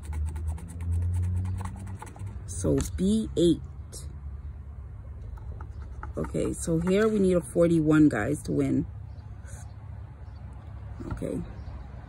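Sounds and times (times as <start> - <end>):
metal scratcher rasping on ticket: 0.0 - 2.8
low steady hum: 0.0 - 12.0.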